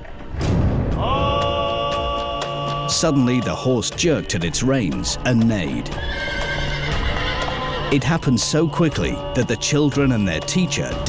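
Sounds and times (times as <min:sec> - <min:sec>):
background music: 0:00.0 - 0:11.0
hoofbeats: 0:05.2 - 0:09.1
horse neighing: 0:05.9 - 0:08.3.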